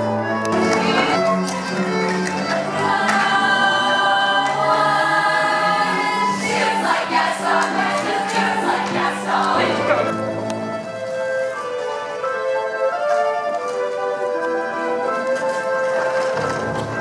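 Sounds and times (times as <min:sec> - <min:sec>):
orchestra playing: 0:00.0 - 0:17.0
chorus singing: 0:02.4 - 0:10.7.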